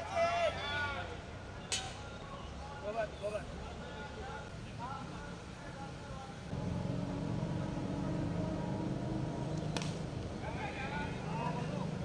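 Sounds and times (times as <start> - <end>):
cricket ball hit: 9.6 - 10.1.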